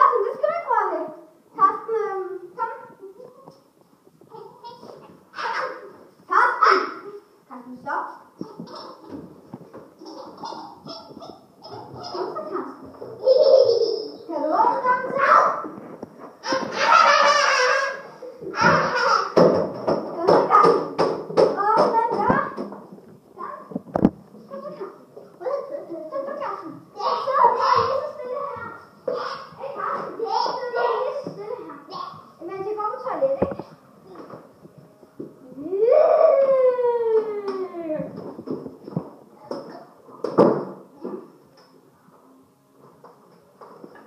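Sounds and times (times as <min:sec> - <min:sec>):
children's voices: 0:04.3 - 0:07.3, 0:10.0 - 0:15.8, 0:16.4 - 0:19.4, 0:24.5 - 0:33.6.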